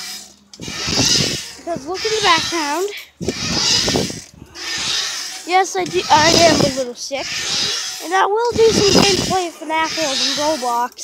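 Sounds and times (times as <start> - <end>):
swing chains rubbing: 0.0 - 11.0.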